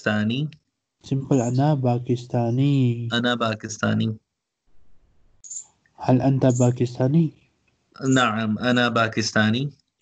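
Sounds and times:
voice speaking over online call: 0.0s - 0.5s, 1.1s - 4.2s, 6.0s - 7.3s, 8.0s - 9.7s.

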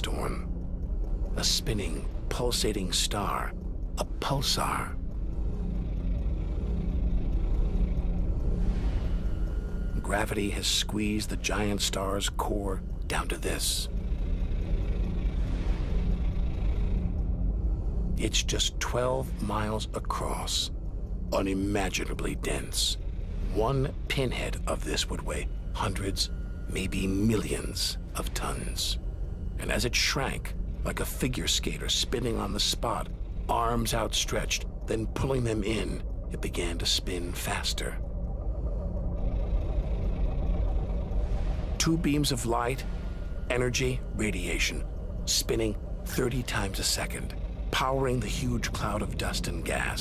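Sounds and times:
deep low drone: 0.0s - 50.0s.

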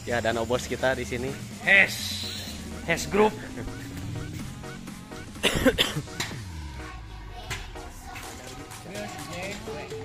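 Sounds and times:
background music: 0.0s - 10.0s
man coughing: 5.3s - 6.2s.

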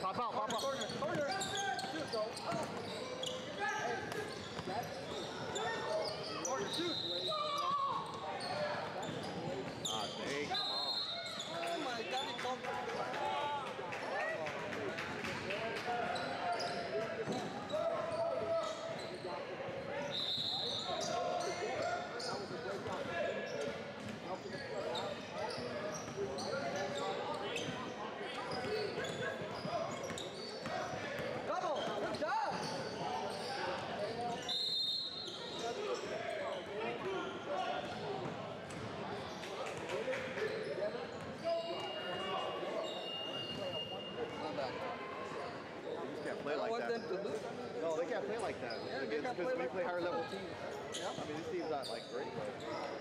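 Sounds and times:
sneakers squeaking: 0.1s - 12.5s, 16.0s - 39.8s, 40.4s - 44.8s, 45.5s - 53.0s.

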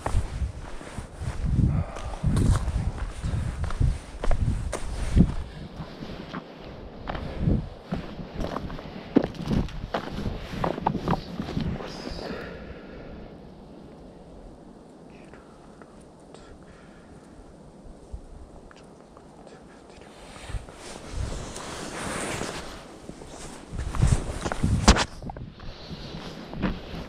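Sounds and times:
footsteps on gravel trail: 0.0s - 12.1s, 20.4s - 27.0s.

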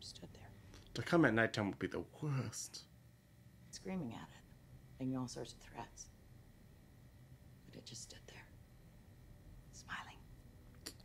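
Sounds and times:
person whispering: 9.8s - 10.2s.

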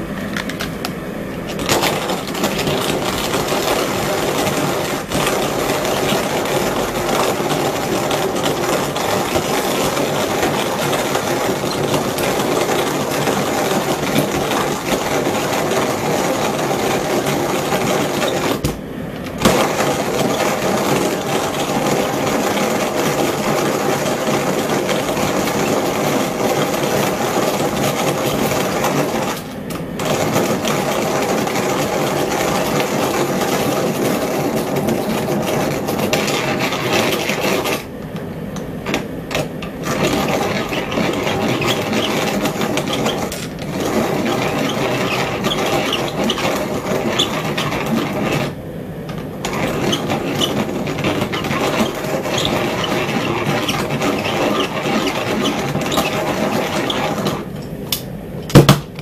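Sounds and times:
hand coffee grinder crunching: 1.4s - 18.6s, 30.0s - 37.8s.

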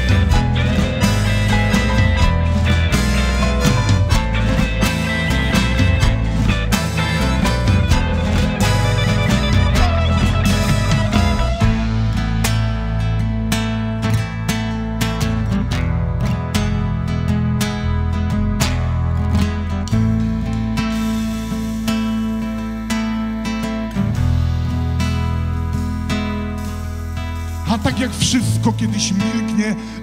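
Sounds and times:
acoustic guitar strumming: 0.0s - 30.0s
double bass line: 0.0s - 30.0s.

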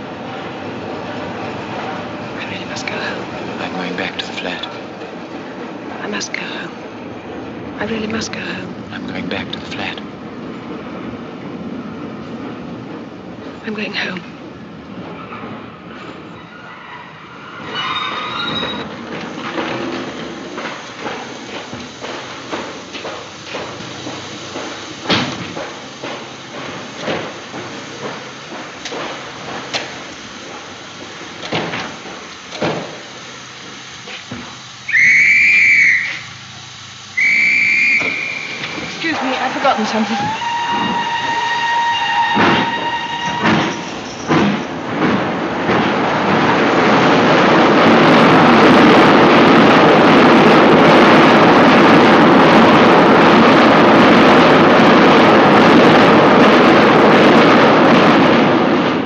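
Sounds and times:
steam train rushing: 0.0s - 59.0s
knocks and clatters: 17.6s - 33.0s, 42.2s - 51.8s
two-note steam whistle: 34.8s - 36.4s, 37.1s - 38.9s, 39.8s - 44.3s
shrill train whistle blasts: 34.9s - 36.4s, 37.2s - 38.8s, 39.8s - 44.3s.

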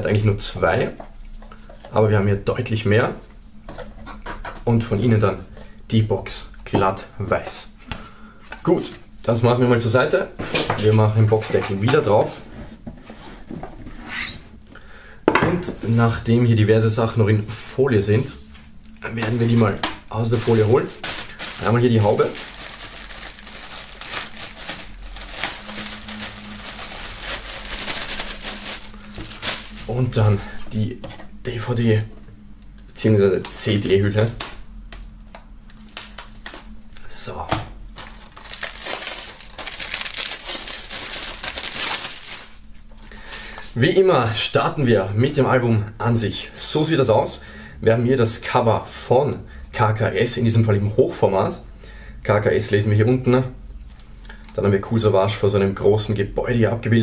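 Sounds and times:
plastic wrap crinkling: 19.2s - 30.6s, 33.0s - 36.8s, 37.9s - 43.6s
knife slitting plastic wrap: 20.2s - 30.1s, 38.0s - 42.6s.

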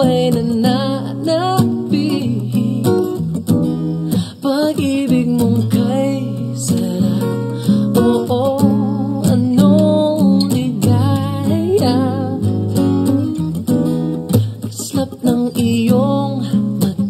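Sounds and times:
man singing: 0.0s - 3.2s, 4.3s - 12.5s, 14.6s - 17.0s
acoustic guitars: 0.0s - 17.0s.

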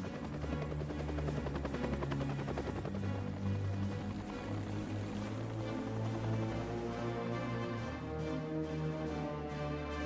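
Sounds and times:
helicopter rotor blades chopping: 0.0s - 7.1s
film score of low held notes: 0.0s - 10.0s.

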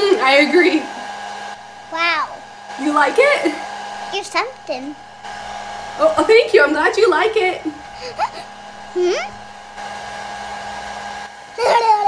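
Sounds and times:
hair dryer running: 0.0s - 12.0s
person's voice: 9.0s - 9.3s.

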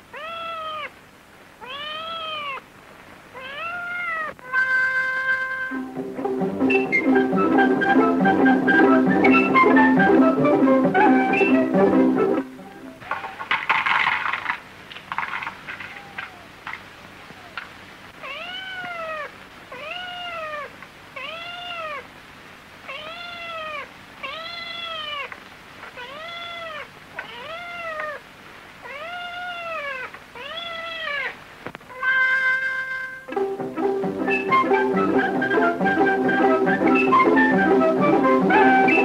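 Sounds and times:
film soundtrack hiss: 0.0s - 39.0s
cat meowing: 0.1s - 1.0s, 1.6s - 2.6s, 3.3s - 5.9s, 15.8s - 16.6s, 18.2s - 22.1s, 22.8s - 32.6s
music: 4.6s - 13.0s, 32.1s - 39.0s.

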